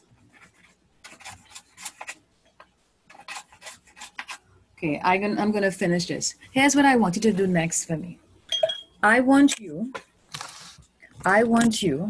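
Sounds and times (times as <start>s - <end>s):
paintbrush brushing on paper: 0.0s - 4.4s.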